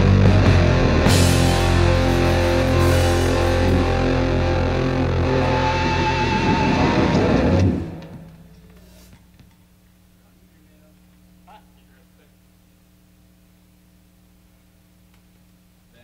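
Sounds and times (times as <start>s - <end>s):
rock band playing live: 0.0s - 8.4s.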